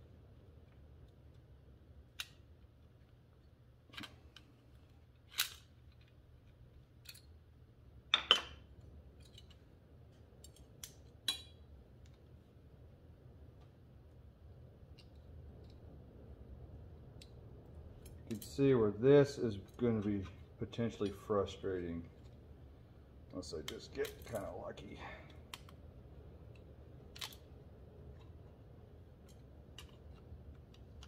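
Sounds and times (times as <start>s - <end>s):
low steady hum: 0.0s - 31.0s
small metal parts clicking: 3.9s - 7.4s.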